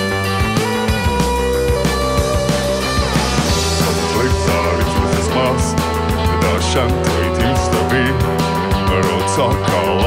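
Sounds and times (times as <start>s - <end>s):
rock band playing: 0.0s - 10.0s
drums striking: 0.4s - 10.0s
man singing: 3.5s - 10.0s.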